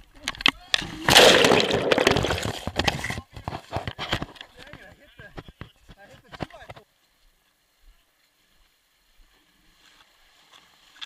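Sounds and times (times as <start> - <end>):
water churning against camera: 0.8 - 3.9
loud splash into water: 1.1 - 2.5.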